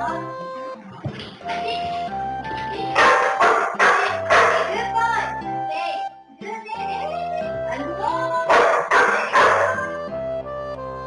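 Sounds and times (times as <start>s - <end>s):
background music: 0.0s - 11.0s
puppy barking: 3.0s - 4.8s, 8.5s - 10.0s.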